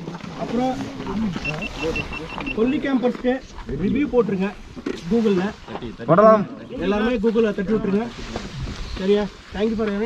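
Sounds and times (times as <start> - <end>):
people talking over one another: 0.0 - 10.0
short high beeps: 1.4 - 2.8.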